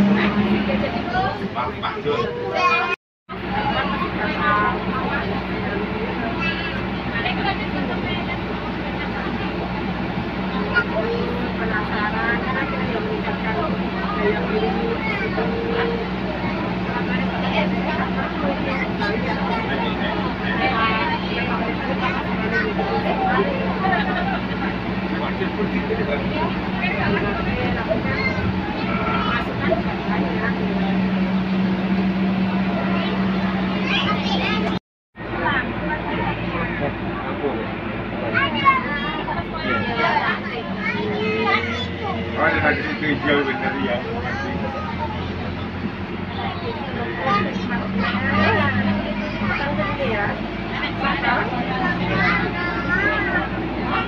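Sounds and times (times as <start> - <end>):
bus engine hum and road noise: 0.0 - 54.0
passengers chattering: 0.0 - 54.0
voices: 0.0 - 54.0.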